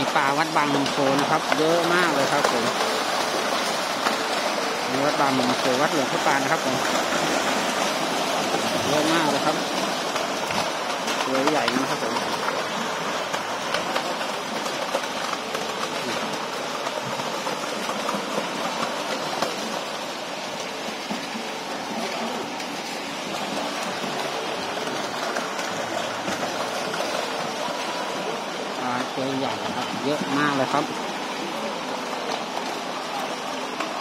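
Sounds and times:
fish splashing at water surface: 0:00.0 - 0:34.0.

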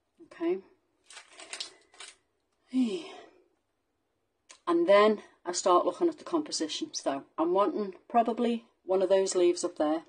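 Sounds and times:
brief rustle: 0:01.0 - 0:02.2
woman sighing: 0:02.7 - 0:03.4.

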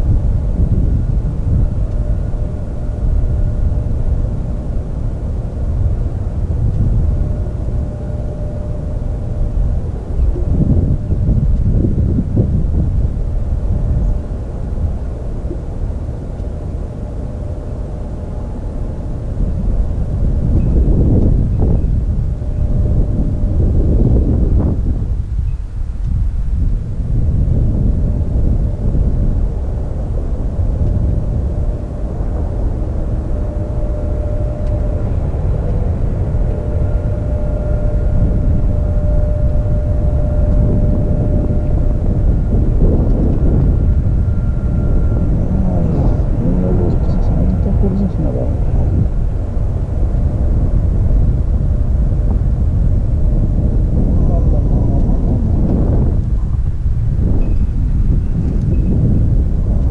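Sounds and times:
jet engine rumble and whine: 0:00.0 - 0:59.9
wind buffeting microphone: 0:00.0 - 0:59.9.

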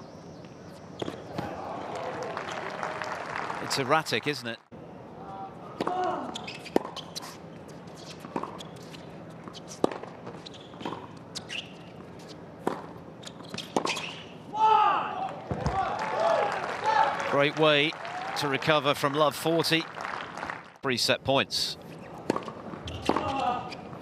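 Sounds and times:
crowd cheering and shouting: 0:01.4 - 0:03.2
racquet striking tennis ball: 0:05.8 - 0:07.0, 0:09.8 - 0:11.2, 0:22.3 - 0:23.4.

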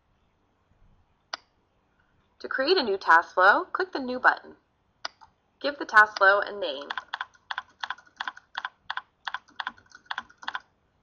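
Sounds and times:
typing on computer keyboard: 0:06.8 - 0:10.7.

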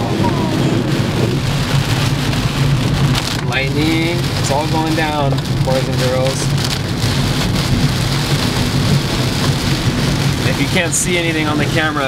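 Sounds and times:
engine and road noise hum: 0:00.0 - 0:12.0
heavy rain on car roof: 0:00.0 - 0:12.0.

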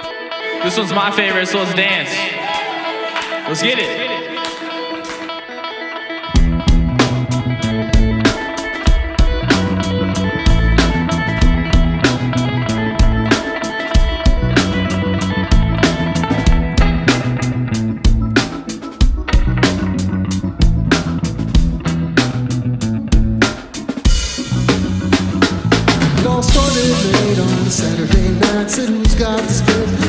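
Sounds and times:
electric guitar: 0:00.0 - 0:30.0
bass guitar: 0:06.2 - 0:30.0
drums steady beat: 0:06.4 - 0:30.0.

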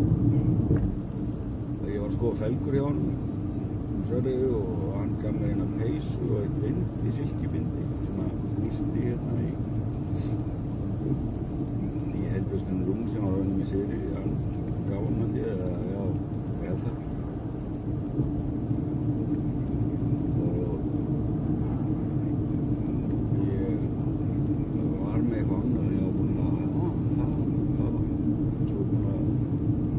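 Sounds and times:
car road and engine drone: 0:00.0 - 0:29.9
man speaking: 0:04.0 - 0:09.6, 0:11.8 - 0:17.1, 0:20.3 - 0:20.9, 0:23.3 - 0:23.9, 0:24.7 - 0:29.4.

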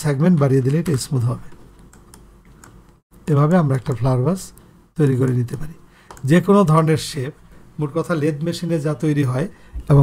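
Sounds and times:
keyboard and mouse clicks: 0:00.3 - 0:03.0, 0:03.8 - 0:06.4.

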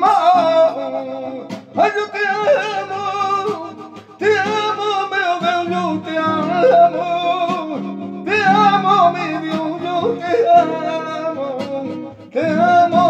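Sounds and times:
acoustic guitar accompaniment: 0:00.0 - 0:13.0
man singing flamenco-style: 0:00.0 - 0:13.0.

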